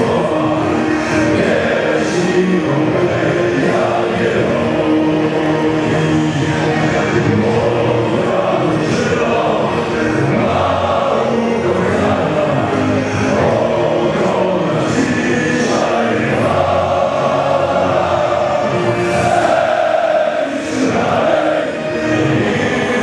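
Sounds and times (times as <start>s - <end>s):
crowd singing a chant: 0.0s - 23.0s.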